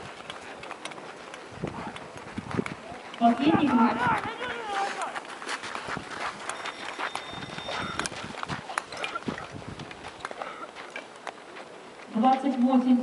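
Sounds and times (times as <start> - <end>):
thin high tone: 6.4 - 8.2.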